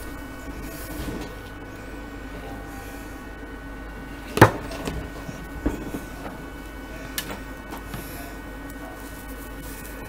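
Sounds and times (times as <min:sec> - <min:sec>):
steady hum: 0:00.0 - 0:10.0
clicks and knocks on metal chassis: 0:04.3 - 0:08.0.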